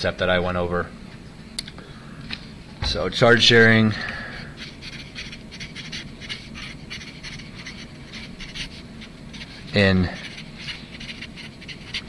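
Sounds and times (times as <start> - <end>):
marker scratching on paper: 4.4 - 12.0.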